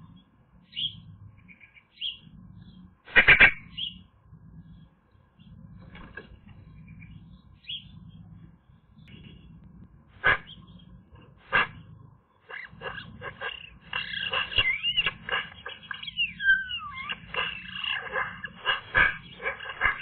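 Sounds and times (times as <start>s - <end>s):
magpie calling and chattering: 0.0s - 4.1s, 4.7s - 8.2s, 10.2s - 20.0s.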